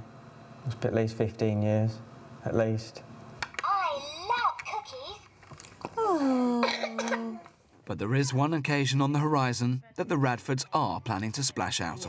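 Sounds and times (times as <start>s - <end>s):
breathy cough-like burst: 6.6s - 7.4s.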